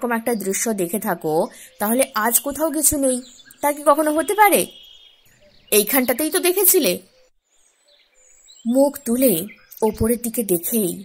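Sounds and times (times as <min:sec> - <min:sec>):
woman narrating: 0:00.0 - 0:04.7, 0:05.7 - 0:07.0, 0:08.6 - 0:11.0.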